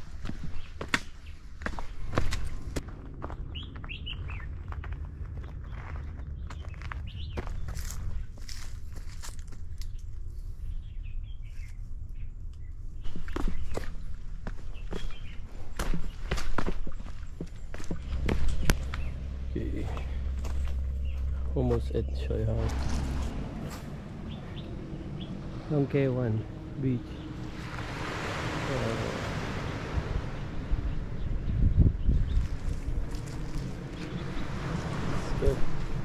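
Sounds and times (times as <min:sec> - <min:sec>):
birds chirping: 0:00.0 - 0:09.1, 0:09.7 - 0:36.0
footsteps on dirt and stone path: 0:00.0 - 0:09.8, 0:13.0 - 0:24.7, 0:32.2 - 0:34.4
low steady rumble: 0:16.9 - 0:36.0.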